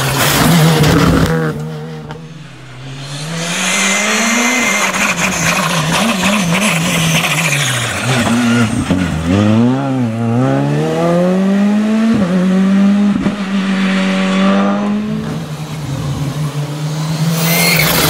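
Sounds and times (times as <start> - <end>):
rally car engine revving: 0.0 - 18.0.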